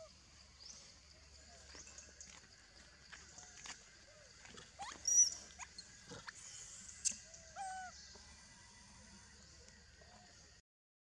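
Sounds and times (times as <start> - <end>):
monkey squealing: 4.8 - 5.8, 7.6 - 7.9
monkey whimpering call: 7.6 - 8.0.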